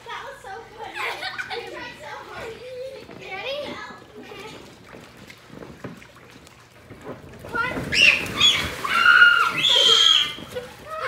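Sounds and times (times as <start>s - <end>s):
children talking and shouting: 0.0s - 5.0s, 7.4s - 11.0s
splash into water: 4.9s - 11.0s
high-pitched shrieks: 7.9s - 10.6s.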